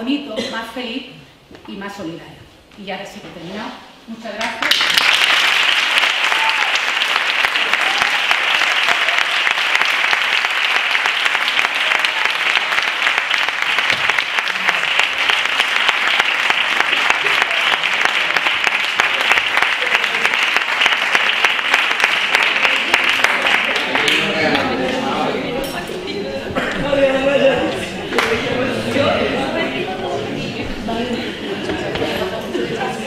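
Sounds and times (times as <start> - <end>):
audience applauding: 4.6 - 25.2.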